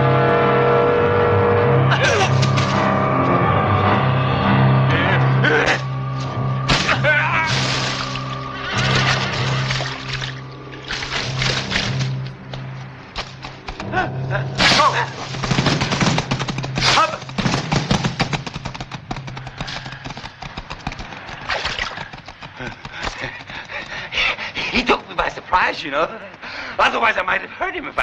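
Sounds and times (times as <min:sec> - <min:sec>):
orchestral low sustained note: 0:00.0 - 0:13.1
clattering impacts: 0:14.6 - 0:23.6.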